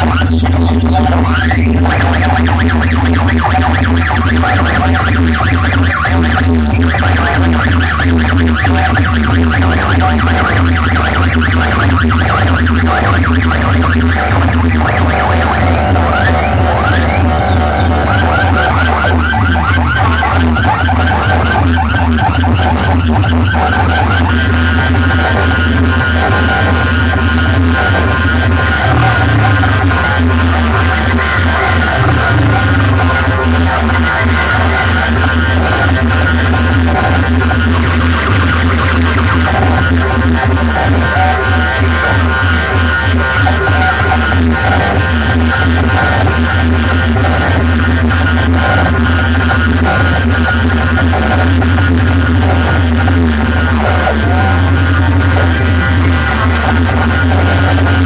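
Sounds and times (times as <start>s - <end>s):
loud electronic dance music: 0.0s - 58.0s.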